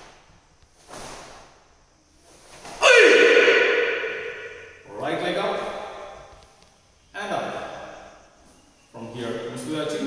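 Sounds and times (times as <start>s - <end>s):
person shouting: 2.8s - 4.4s.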